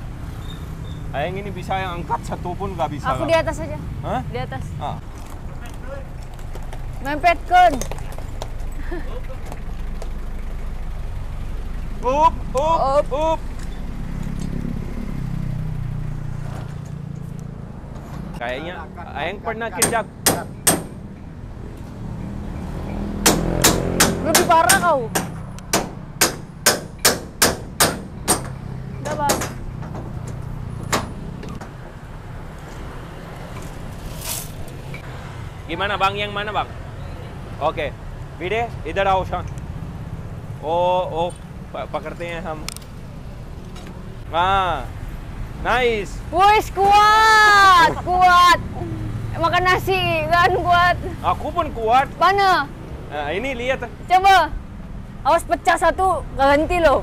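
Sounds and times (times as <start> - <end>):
motorbikes passing: 0.0 - 26.6, 28.0 - 57.0.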